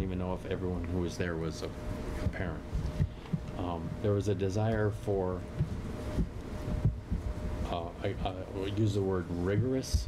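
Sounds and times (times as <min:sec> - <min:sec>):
steady low hum: 0:00.0 - 0:10.0
soft low thumps: 0:04.7 - 0:08.4, 0:09.4 - 0:10.0.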